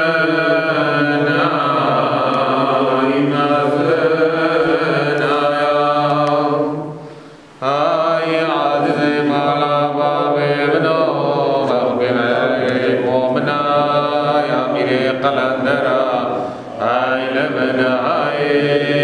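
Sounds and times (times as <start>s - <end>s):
men chanting a hymn: 0.0s - 19.0s.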